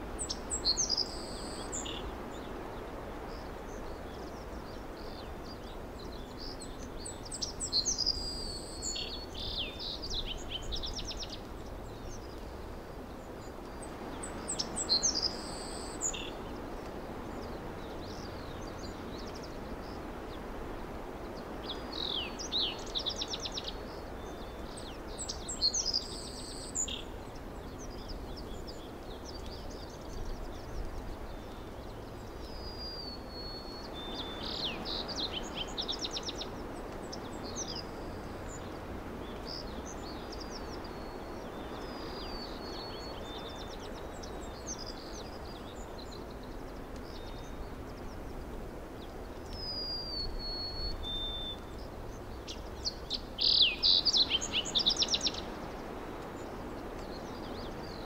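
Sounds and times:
background hiss: 0.0s - 58.0s.

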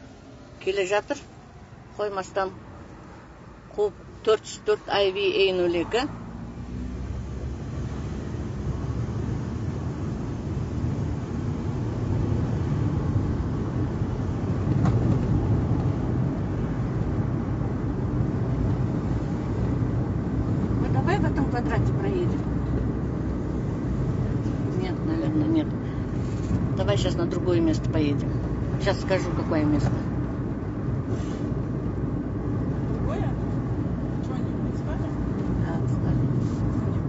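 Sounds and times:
car cabin road rumble: 0.0s - 37.0s.

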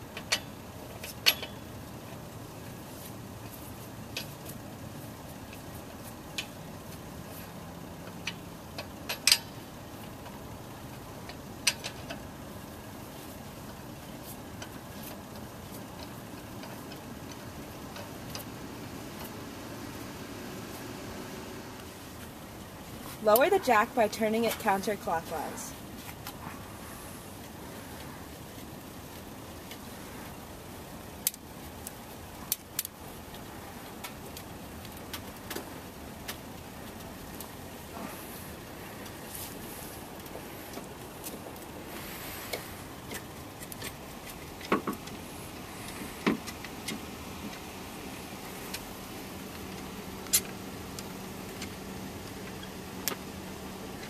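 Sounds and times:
steady background noise: 0.0s - 54.0s.

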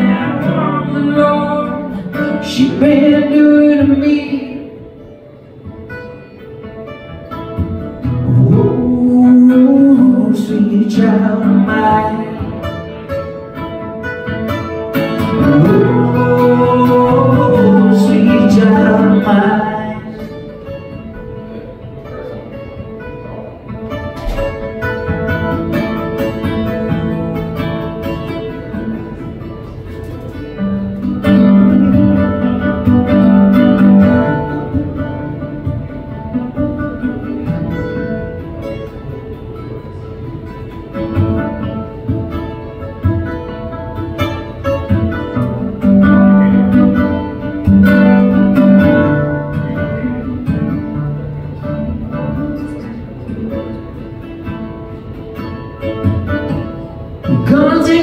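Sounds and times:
solo acoustic guitar: 0.0s - 58.0s.

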